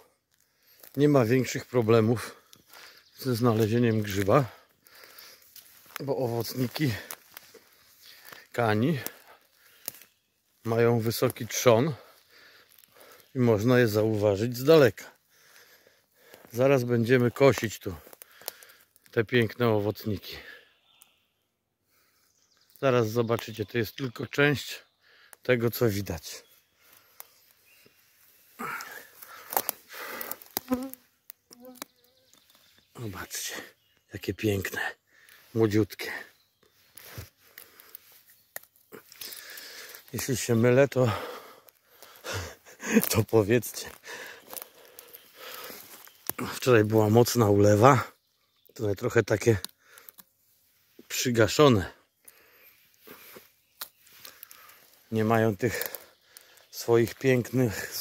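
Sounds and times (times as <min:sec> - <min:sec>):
footsteps through undergrowth: 0:00.0 - 0:19.6, 0:25.7 - 0:47.8, 0:50.2 - 0:58.0
flying insect buzzing: 0:30.0 - 0:32.2.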